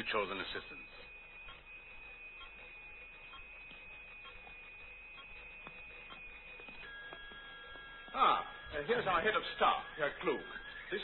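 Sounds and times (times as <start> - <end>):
electronic equipment tones: 0.0 - 11.0.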